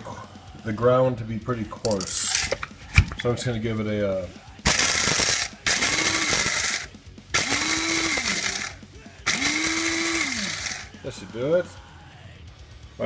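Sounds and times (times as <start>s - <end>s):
coffee grinder motor whine: 4.7s - 11.1s.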